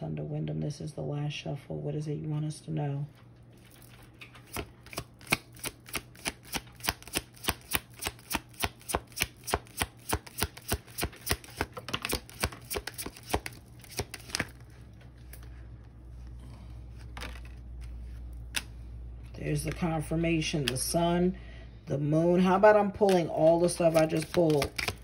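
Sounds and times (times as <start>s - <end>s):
cards being shuffled: 3.6s - 16.3s, 16.9s - 20.8s, 23.0s - 25.0s.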